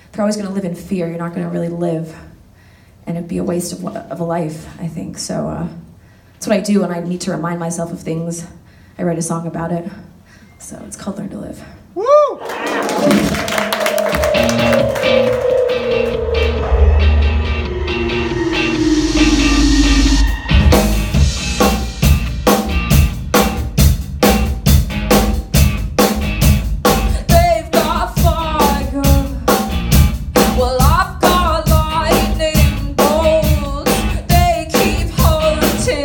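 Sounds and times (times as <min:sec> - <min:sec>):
long falling tone: 0:13.3 - 0:21.4
low bass swell: 0:13.5 - 0:22.1
pop-rock band playing: 0:13.9 - 0:36.0
woman singing: 0:27.2 - 0:29.4, 0:30.4 - 0:36.0.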